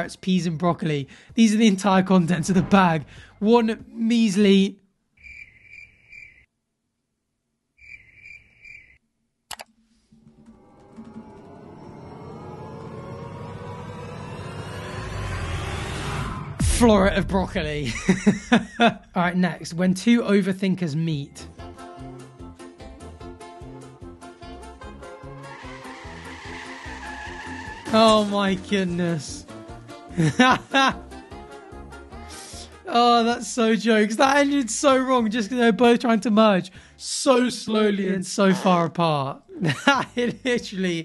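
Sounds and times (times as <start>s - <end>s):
cricket chirps: 5.2s - 6.5s, 7.8s - 9.0s
sharp click: 9.5s - 9.7s
music riser climbing in pitch: 10.1s - 18.5s, 24.4s - 30.4s
car tyre and road noise: 25.1s - 28.3s.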